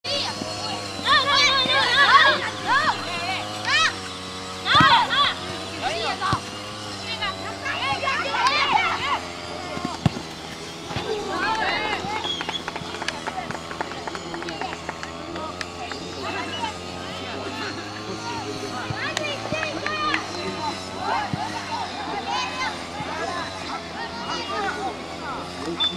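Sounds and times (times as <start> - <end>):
children shouting and calling: 0.0 - 25.8
ball being kicked: 1.3 - 3.0, 4.7 - 6.6, 9.6 - 14.9.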